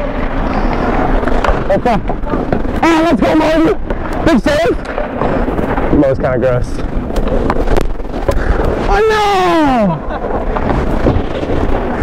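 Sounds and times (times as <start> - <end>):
skates scraping ice: 0.0 - 12.0
hockey sticks clacking: 0.2 - 9.1, 10.2 - 12.0.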